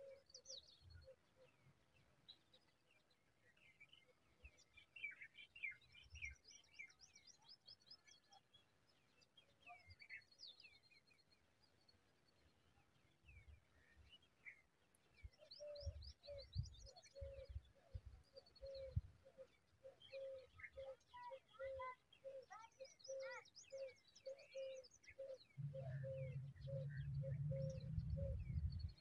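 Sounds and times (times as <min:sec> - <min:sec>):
birds high chirps and trills: 0:02.3 - 0:11.8, 0:13.0 - 0:29.0
low rumble: 0:25.6 - 0:29.0.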